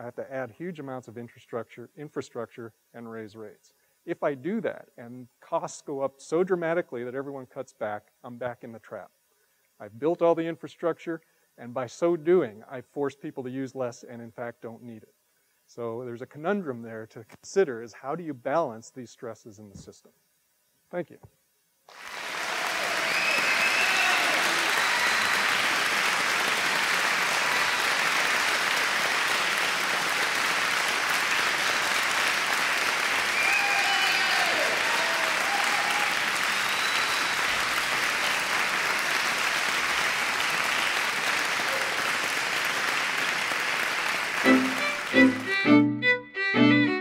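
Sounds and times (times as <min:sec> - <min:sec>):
audience applauding: 0:21.9 - 0:45.7
violin music: 0:44.4 - 0:47.0.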